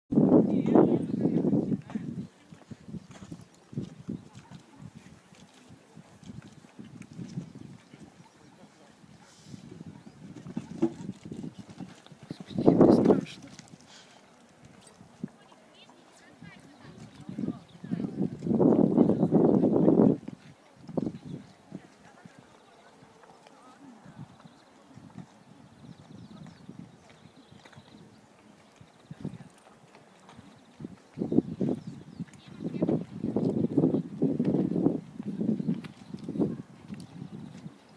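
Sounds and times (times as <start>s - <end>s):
horse hooves on sand: 0.4s - 37.9s.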